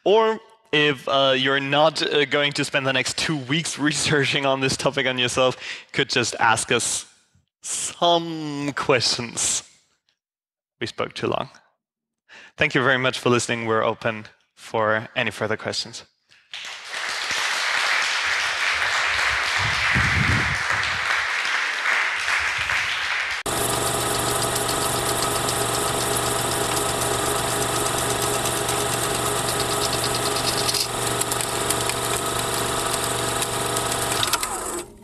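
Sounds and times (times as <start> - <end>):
audience applauding: 16.6 - 23.5
projector hum with rapid ticking: 23.5 - 34.8.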